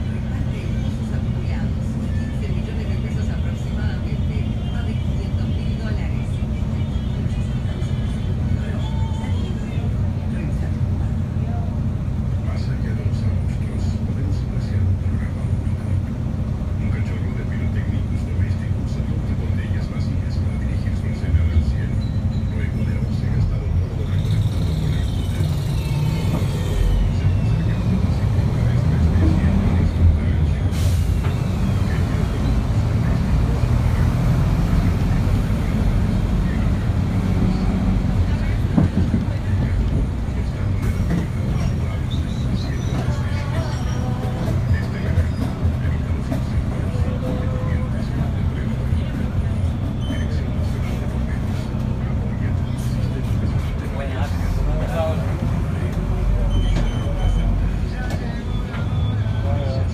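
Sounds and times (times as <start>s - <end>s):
bus engine and road rumble: 0.0s - 59.9s.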